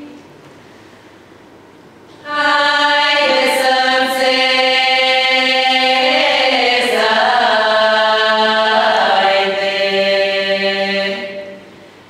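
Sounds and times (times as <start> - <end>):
women's choir singing in harmony: 2.2 - 11.9.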